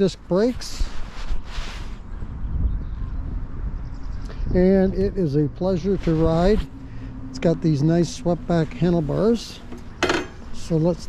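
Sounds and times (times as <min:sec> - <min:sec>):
wind buffeting microphone: 0:00.0 - 0:10.8.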